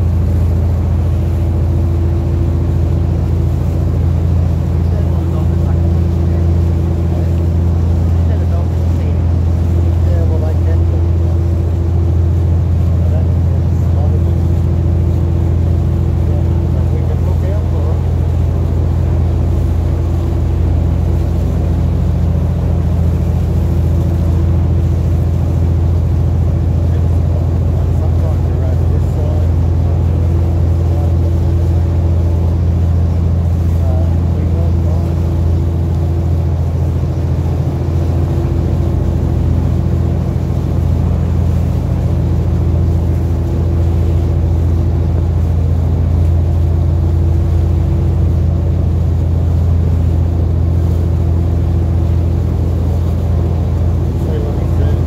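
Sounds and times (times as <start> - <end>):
boat engine droning: 0.0 - 55.0.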